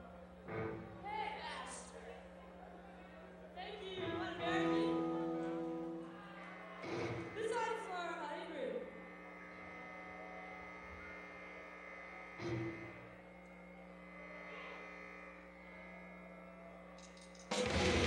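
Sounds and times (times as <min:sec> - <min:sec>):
amplifier electrical hum: 0:00.0 - 0:18.0.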